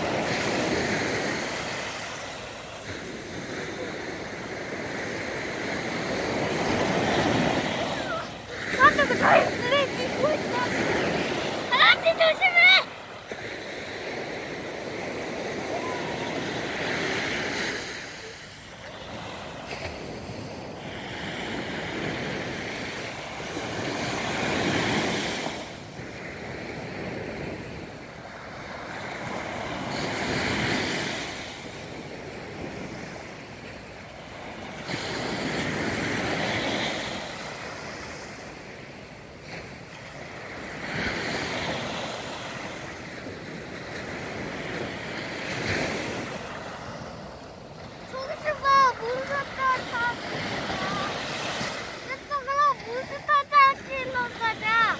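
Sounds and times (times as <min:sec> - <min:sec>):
waves breaking on a beach: 0:00.0 - 0:54.9.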